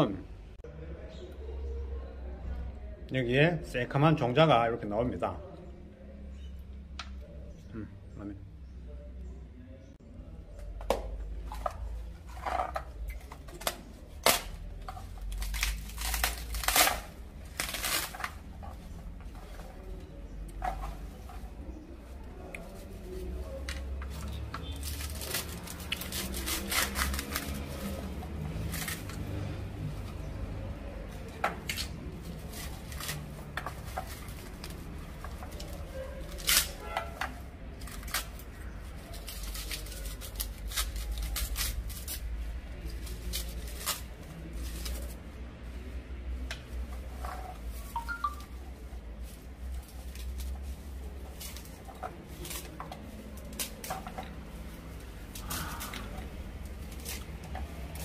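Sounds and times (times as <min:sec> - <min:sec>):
dry fruit pulp crackling and tearing: 0:10.4 - 0:58.0.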